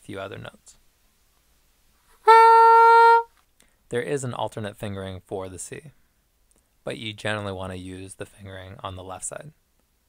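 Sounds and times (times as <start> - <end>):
soprano saxophone held note: 2.2 - 3.3.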